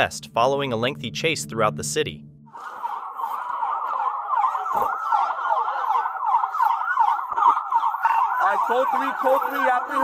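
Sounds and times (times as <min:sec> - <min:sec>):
police sirens wailing: 0:02.5 - 0:10.0.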